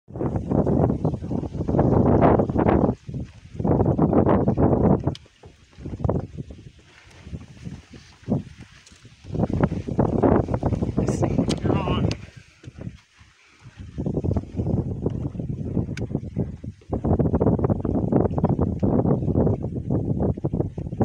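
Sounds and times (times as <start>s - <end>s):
wind buffeting microphone: 0.1s - 21.0s.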